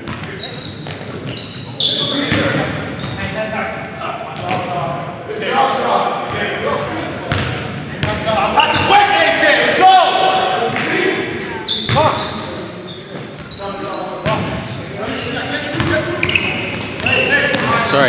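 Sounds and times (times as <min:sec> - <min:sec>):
sneakers squeaking: 0:00.0 - 0:09.7, 0:10.6 - 0:18.0.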